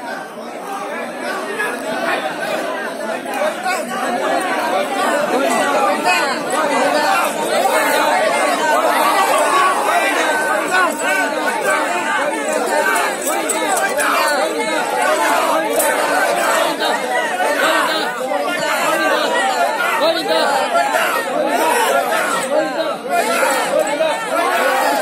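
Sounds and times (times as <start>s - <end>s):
crowd talking and calling out: 0.0s - 25.0s.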